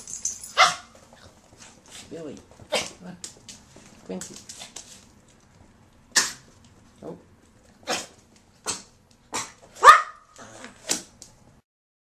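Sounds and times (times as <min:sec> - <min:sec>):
small dogs yipping and barking: 0:00.4 - 0:00.9, 0:09.4 - 0:10.4.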